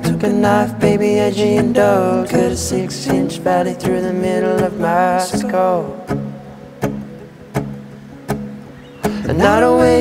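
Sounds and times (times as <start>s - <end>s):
acoustic guitars strumming chords: 0.0s - 10.0s.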